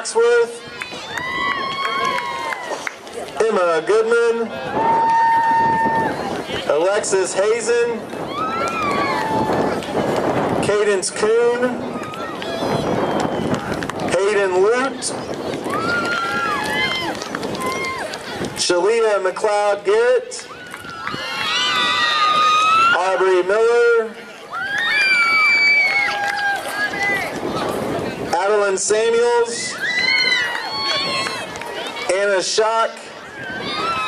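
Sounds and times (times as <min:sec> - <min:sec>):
crowd noise: 0:00.0 - 0:34.0
children cheering: 0:00.6 - 0:03.0, 0:04.6 - 0:06.4, 0:08.2 - 0:10.2, 0:11.9 - 0:13.9, 0:15.2 - 0:18.6, 0:20.4 - 0:23.4, 0:24.4 - 0:27.8, 0:29.7 - 0:32.2, 0:33.2 - 0:34.0.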